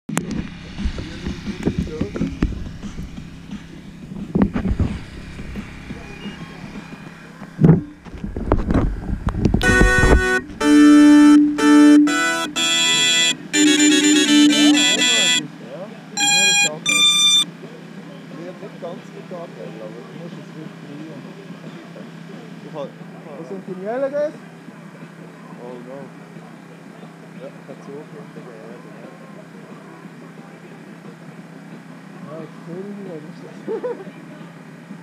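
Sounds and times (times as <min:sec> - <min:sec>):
electronic beep tones: 0:06.0 - 0:06.7, 0:09.6 - 0:15.5, 0:16.2 - 0:17.5.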